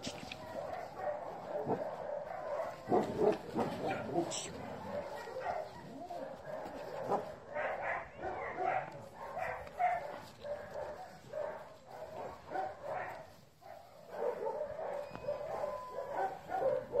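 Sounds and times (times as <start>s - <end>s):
dog whining and yipping: 15.0s - 17.0s.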